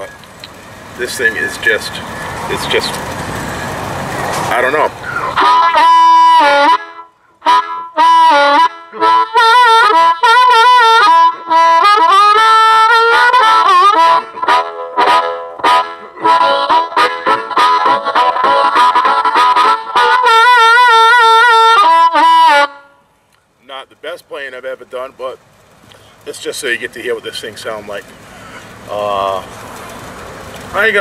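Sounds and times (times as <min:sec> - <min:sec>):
amplified blues harmonica: 0:05.0 - 0:23.0.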